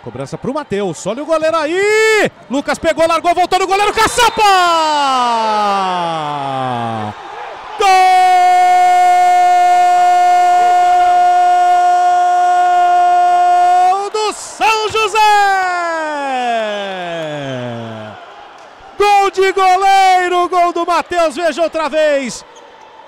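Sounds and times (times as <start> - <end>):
commentator's drawn-out goal cry: 1.4 - 7.2, 7.8 - 18.2
commentator talking: 19.0 - 22.4.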